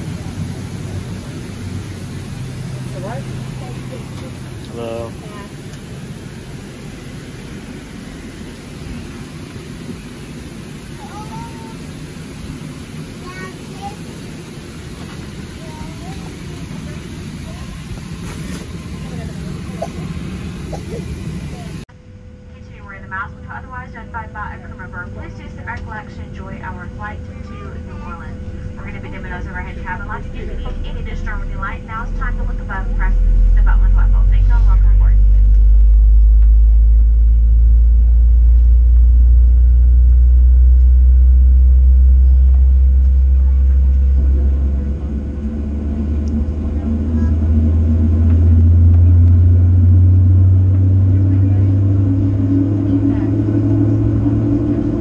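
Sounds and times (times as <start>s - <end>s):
airplane cabin hum: 0.0s - 55.0s
loud low rumble: 0.0s - 55.0s
steady whine: 0.0s - 55.0s
people talking: 2.8s - 5.7s, 10.9s - 11.9s, 13.1s - 14.2s, 14.9s - 21.8s, 22.6s - 35.6s, 42.2s - 49.5s, 50.8s - 55.0s.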